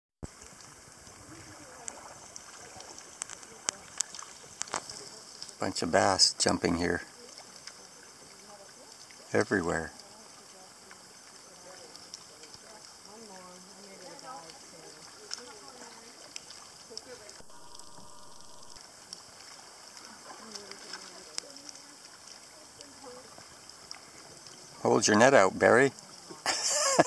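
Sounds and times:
fish splashing at water surface: 0:00.2 - 0:06.1, 0:07.0 - 0:24.8.

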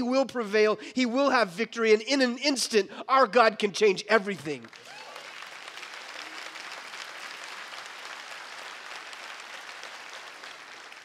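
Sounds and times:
congregation applauding: 0:04.5 - 0:11.0.

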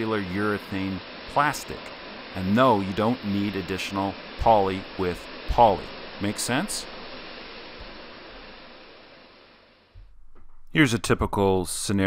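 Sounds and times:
spray foam gun hissing: 0:00.0 - 0:10.0.

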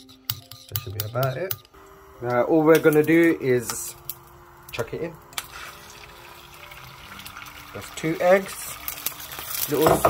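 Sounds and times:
liquid egg hissing in a pan: 0:02.8 - 0:10.0.

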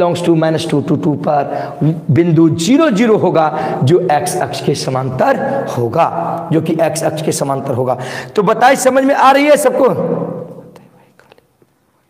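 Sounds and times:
man's voice: 0:00.0 - 0:10.9.

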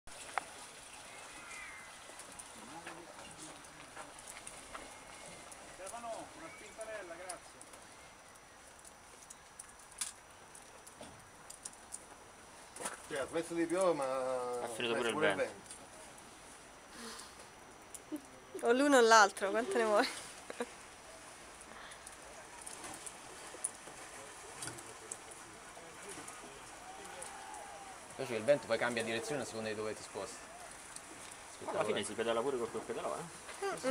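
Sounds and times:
outdoor background hiss: 0:00.1 - 0:33.9
faint voices talking: 0:24.1 - 0:32.2.

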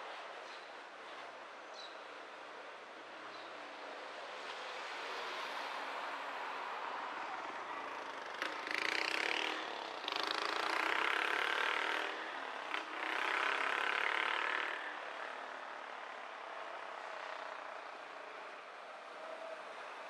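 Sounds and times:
steady traffic hum: 0:00.0 - 0:20.0
traffic passing close by: 0:02.0 - 0:20.0.

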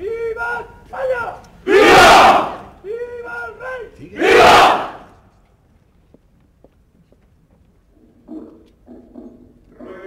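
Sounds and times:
crowd shouting in unison: 0:01.7 - 0:02.7, 0:04.2 - 0:05.1.

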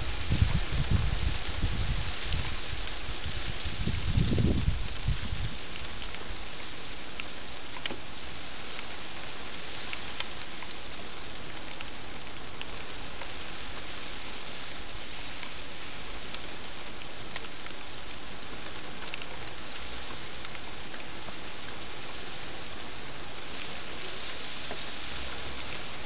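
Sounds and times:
steady hiss: 0:00.0 - 0:26.0
faint ticks: 0:04.2 - 0:26.0.

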